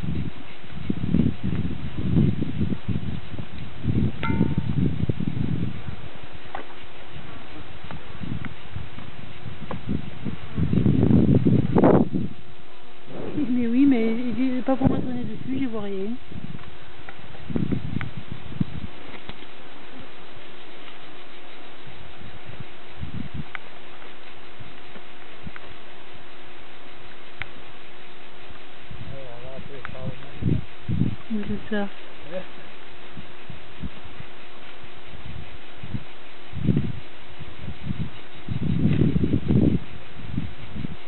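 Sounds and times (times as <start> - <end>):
soft low bumps: 0.0 - 32.2
low rumbling on microphone: 0.0 - 41.0
short metallic ring: 4.2 - 4.7.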